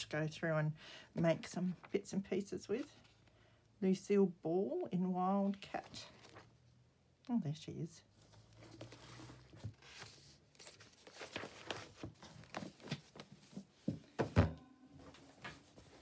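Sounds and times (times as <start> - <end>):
book pages rustling: 5.4 - 6.6, 8.1 - 14.0
thump: 14.2 - 14.6.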